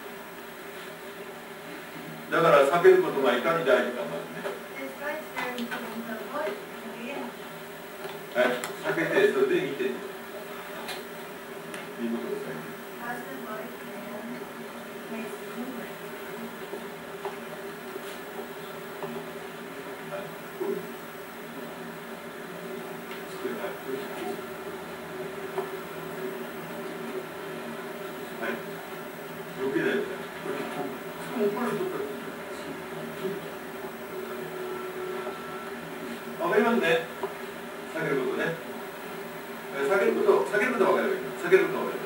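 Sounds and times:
low hum and hiss: 0.0 - 42.0.

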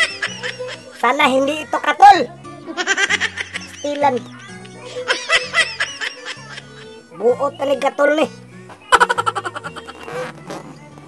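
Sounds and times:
background music with bass: 6.6 - 11.0
high-pitched laughter: 8.9 - 10.1.

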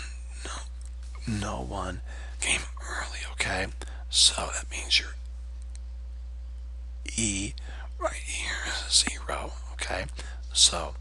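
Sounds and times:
low steady hum: 0.0 - 11.0
faint light clicks: 5.2 - 5.9.

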